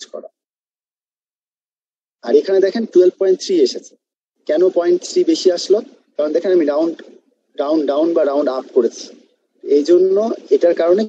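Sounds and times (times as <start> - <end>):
man speaking: 0.0 - 0.4, 2.2 - 11.0.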